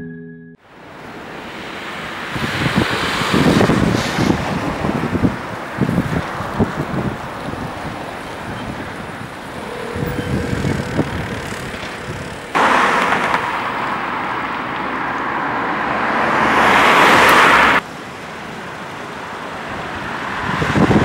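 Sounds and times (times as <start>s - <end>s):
outdoor street noise: 0.6s - 21.0s
car passing on road: 0.7s - 21.0s.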